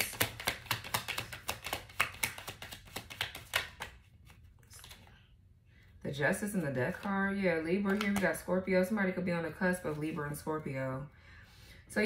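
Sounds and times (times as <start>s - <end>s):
cards being shuffled: 0.0s - 5.3s, 6.5s - 8.5s.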